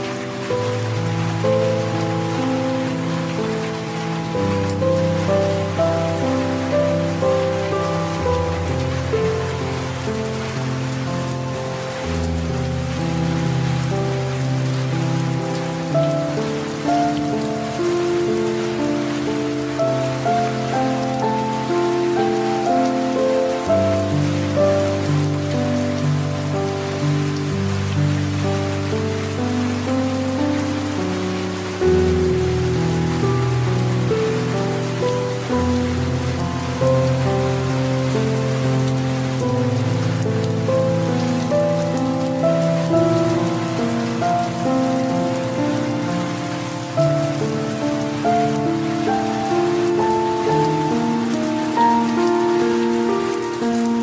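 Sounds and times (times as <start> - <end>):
soft background music: 0.0 - 54.0
steady rain falling: 0.0 - 54.0.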